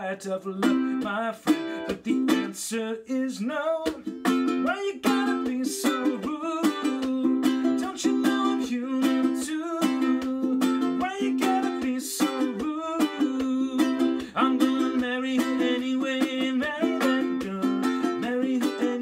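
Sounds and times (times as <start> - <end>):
man singing: 0.0 - 19.0
ukulele strummed in reggae rhythm: 0.0 - 19.0.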